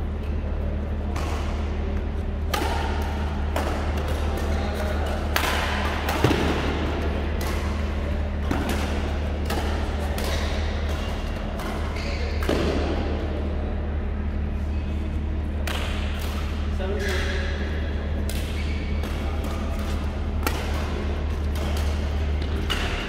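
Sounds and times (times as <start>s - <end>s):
steady low hum: 0.0s - 23.0s
rackets hitting shuttlecock: 1.1s - 13.2s, 15.6s - 17.5s, 18.2s - 23.0s.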